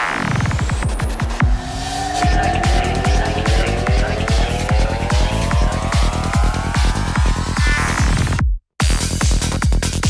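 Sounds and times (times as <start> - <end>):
rising synth tones: 0.6 - 8.3.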